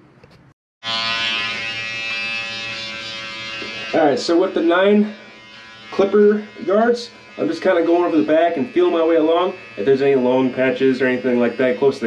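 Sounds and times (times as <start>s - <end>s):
electric hair clippers buzzing: 0.8s - 12.0s.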